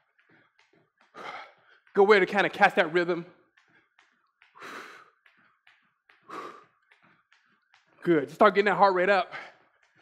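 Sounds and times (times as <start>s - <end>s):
jump rope and feet tapping: 0.0s - 10.0s.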